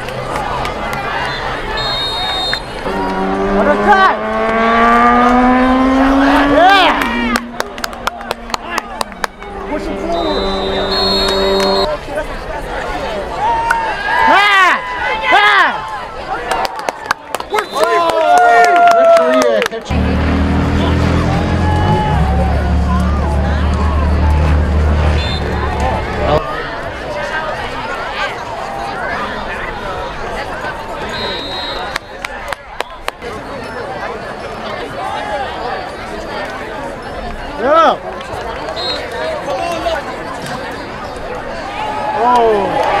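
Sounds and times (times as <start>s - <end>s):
crowd shouting and cheering: 0.0s - 43.0s
brass band notes: 9.2s - 12.0s, 23.6s - 26.4s.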